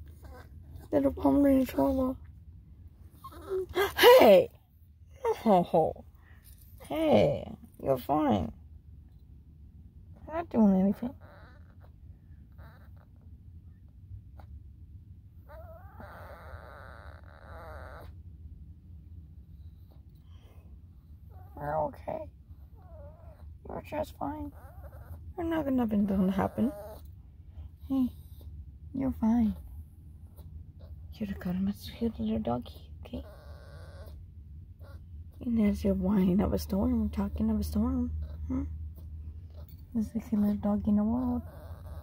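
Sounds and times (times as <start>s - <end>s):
small dog whining: 0.1s - 0.9s, 3.1s - 4.2s, 11.0s - 13.8s, 15.4s - 18.2s, 21.0s - 21.8s, 22.5s - 23.7s, 24.4s - 25.4s, 26.0s - 27.1s, 33.2s - 35.1s, 41.0s - 42.0s.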